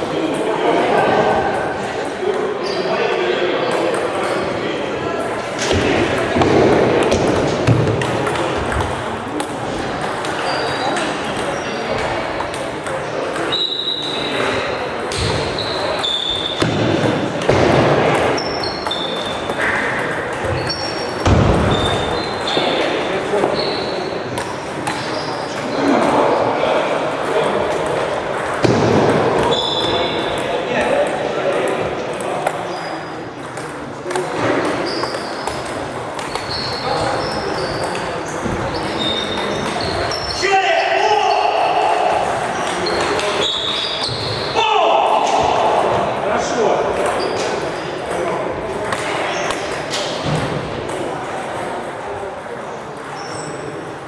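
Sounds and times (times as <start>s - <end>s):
murmur of voices: 0.0s - 54.0s
table tennis balls clicking: 5.6s - 13.6s, 33.4s - 40.1s, 47.0s - 53.2s.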